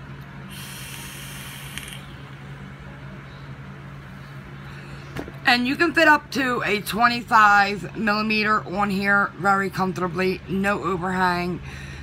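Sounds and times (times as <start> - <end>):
steady low hum: 0.0 - 12.0
vape hissing: 0.5 - 2.2.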